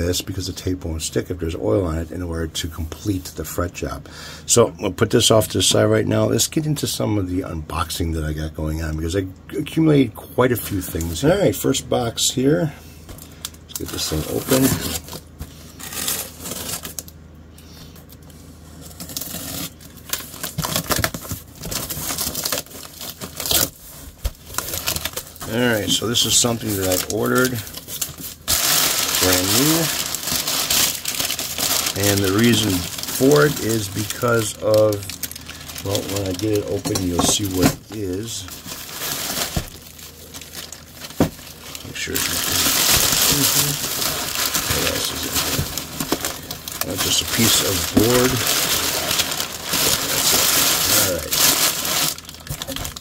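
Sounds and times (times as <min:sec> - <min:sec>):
packing paper crinkling: 0:13.2 - 0:17.3, 0:17.9 - 0:53.0
tape and cardboard tearing: 0:18.9 - 0:23.8.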